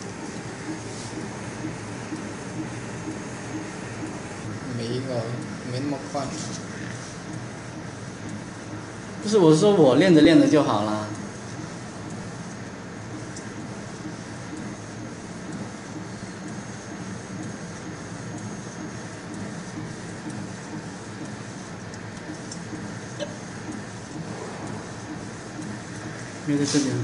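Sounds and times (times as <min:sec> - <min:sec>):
faint printer ticks: 0:00.0 - 0:27.0
printer mechanical hum: 0:00.0 - 0:27.0.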